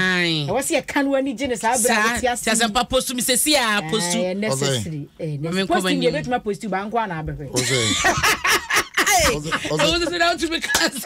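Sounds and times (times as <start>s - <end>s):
woman talking: 0.0s - 7.6s, 9.0s - 11.0s
women laughing loudly: 7.6s - 10.4s.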